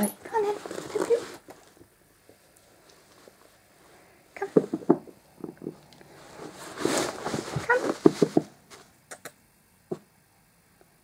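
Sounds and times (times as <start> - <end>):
fabric mat rustling: 0.0 - 1.8, 6.1 - 9.0.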